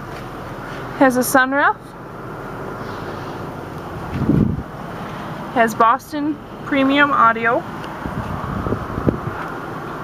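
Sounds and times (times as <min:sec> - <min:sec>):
car cabin hum: 0:03.4 - 0:04.8, 0:05.4 - 0:10.0
microphone rumble: 0:04.0 - 0:04.7, 0:08.0 - 0:09.4.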